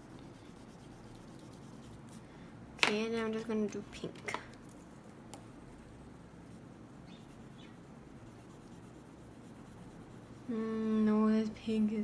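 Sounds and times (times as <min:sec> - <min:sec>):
oil pastel scratching on paper: 0:00.0 - 0:02.2, 0:04.6 - 0:11.2.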